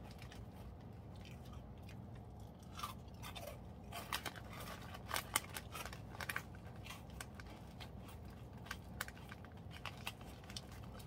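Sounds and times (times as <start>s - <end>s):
snack crunching while chewed: 0.0s - 11.0s.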